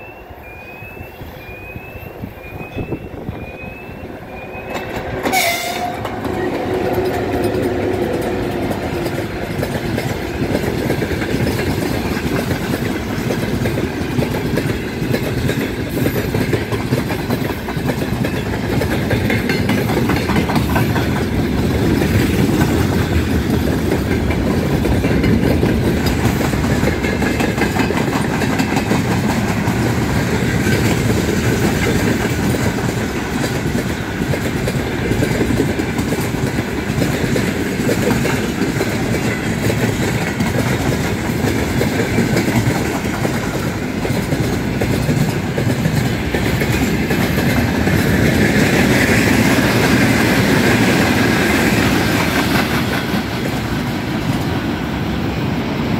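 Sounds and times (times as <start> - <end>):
steel wheels rumbling on rail: 0.0 - 55.9
wheels clacking over rail joints: 3.4 - 55.0.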